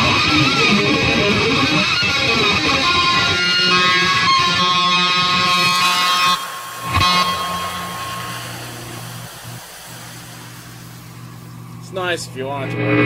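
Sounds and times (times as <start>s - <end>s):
distorted electric guitar: 0.0s - 13.0s
amplifier hum and hiss: 5.1s - 13.0s.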